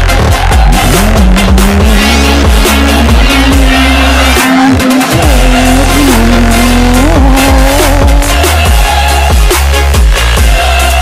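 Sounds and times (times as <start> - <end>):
car engine revving: 0.0 - 8.7
electronic bass music: 0.0 - 11.0.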